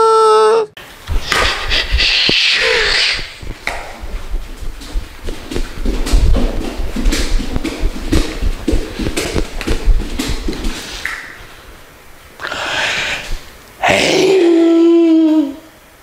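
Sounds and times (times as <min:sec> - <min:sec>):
bare feet stomping on hard floor: 0:03.2 - 0:11.4.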